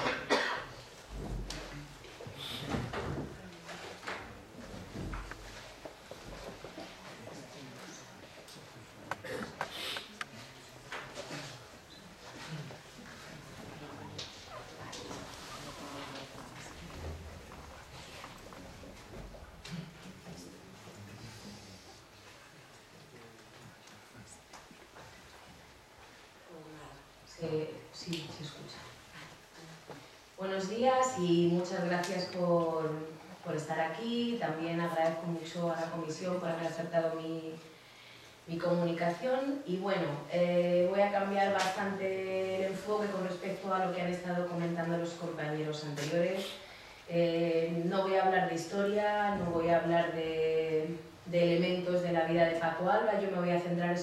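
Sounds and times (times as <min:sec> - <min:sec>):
person coughing: 0:00.0 - 0:00.8.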